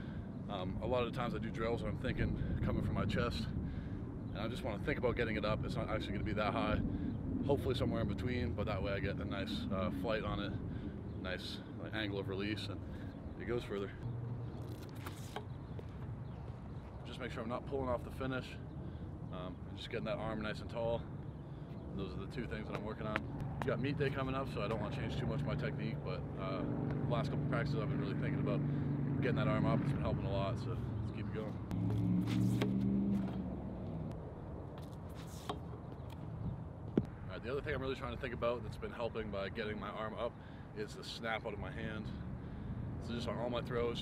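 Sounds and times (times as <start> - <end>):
low outdoor rumble: 0.0 - 44.0
vehicle engine hum: 20.9 - 37.3.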